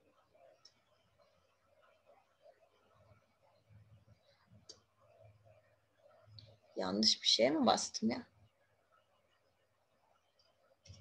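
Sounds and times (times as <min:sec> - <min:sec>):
woman's voice: 0:06.8 - 0:08.3.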